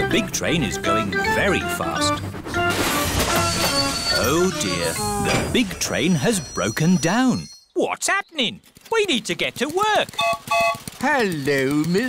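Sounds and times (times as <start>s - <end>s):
background music: 0.0s - 7.5s
cartoon clattering crash: 2.6s - 4.2s.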